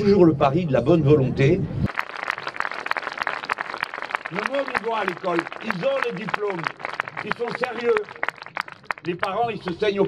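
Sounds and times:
crowd applauding: 0:01.9 - 0:10.0.

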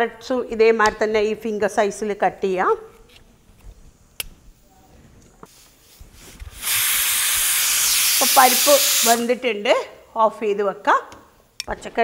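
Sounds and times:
pressure cooker steam hiss: 0:05.5 - 0:09.4.

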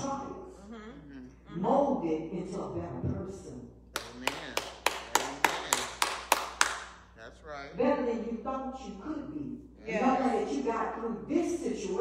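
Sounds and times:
person clapping hands: 0:03.9 - 0:06.9.

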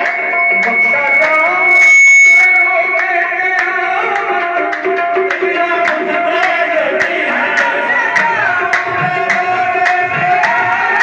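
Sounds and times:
high held tone: 0:00.0 - 0:06.4
person singing: 0:00.0 - 0:11.0
tabla strokes: 0:00.0 - 0:11.0.

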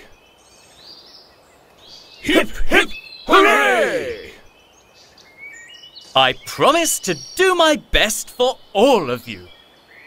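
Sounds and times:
low background hiss: 0:00.0 - 0:10.0
cartoon voices shouting: 0:02.2 - 0:04.4.

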